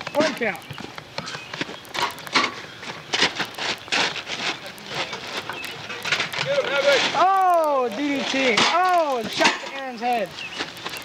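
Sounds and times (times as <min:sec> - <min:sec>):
wrestlers scuffling on grass: 0:00.0 - 0:11.0.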